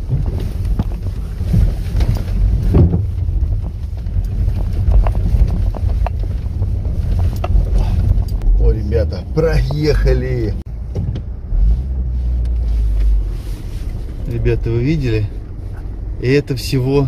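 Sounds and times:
suspension knocks: 0.0 - 8.7
engine and tyres rumbling in water: 0.0 - 17.0.

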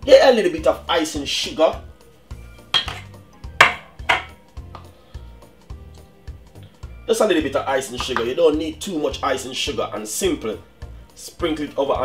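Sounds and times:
background music with low beat: 0.0 - 12.0
metal kitchenware clattering: 2.7 - 4.4.

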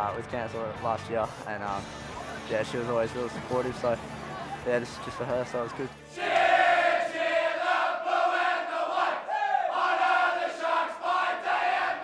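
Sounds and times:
team singing in unison: 6.1 - 12.0.

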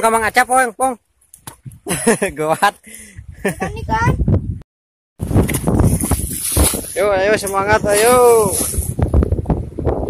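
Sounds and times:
water splashing into river: 5.2 - 7.0.

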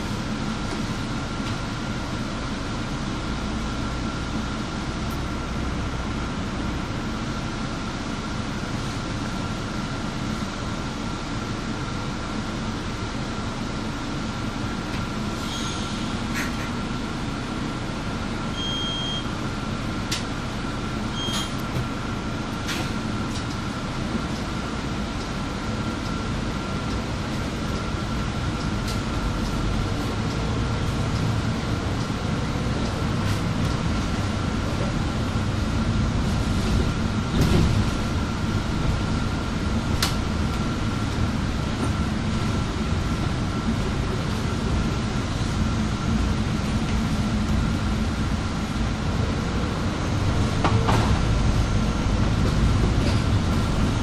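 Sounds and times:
bus engine rumble: 0.0 - 54.0
road noise: 0.0 - 54.0.

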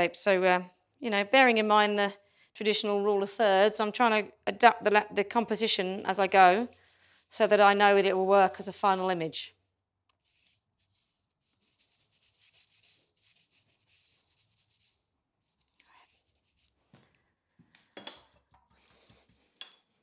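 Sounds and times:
paintbrush scrubbing strokes: 5.6 - 17.0.

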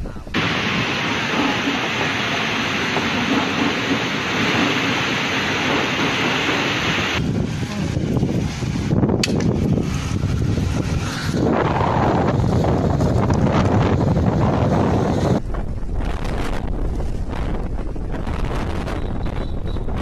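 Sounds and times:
storm wind and heavy rain: 0.0 - 20.0
wind buffeting microphone: 0.0 - 20.0
sharp click: 9.2 - 9.5.

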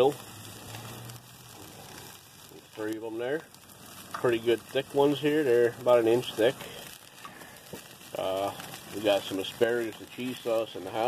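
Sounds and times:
rain falling on a grill: 0.0 - 11.0
steaks sizzling on a grill: 0.0 - 11.0.

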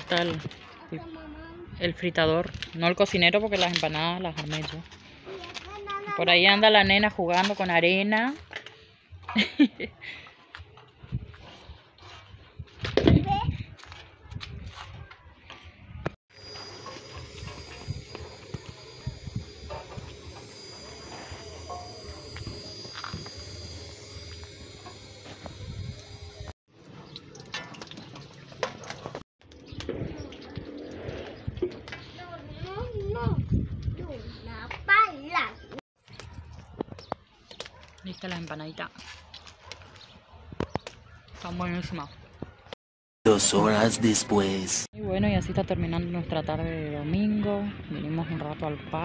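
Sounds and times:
voices: 43.3 - 49.0.

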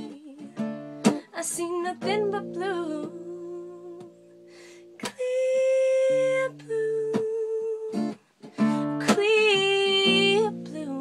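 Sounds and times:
acoustic guitar strumming chords: 0.2 - 5.2, 6.2 - 11.0.

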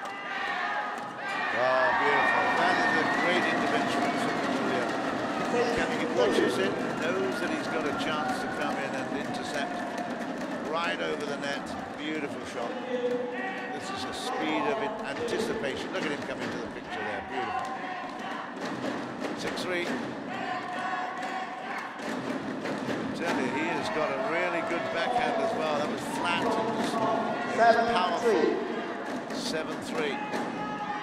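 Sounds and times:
crowd voices and shouts: 0.0 - 31.0.

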